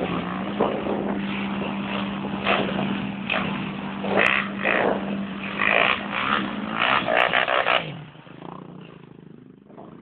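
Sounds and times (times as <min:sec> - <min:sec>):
off-road engine revving: 0:00.0 - 0:10.0
wheels spinning in mud: 0:00.0 - 0:10.0.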